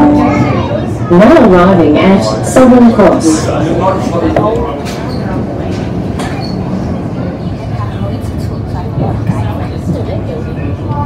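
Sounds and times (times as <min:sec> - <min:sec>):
train wheels rumbling on track: 0:00.0 - 0:11.0.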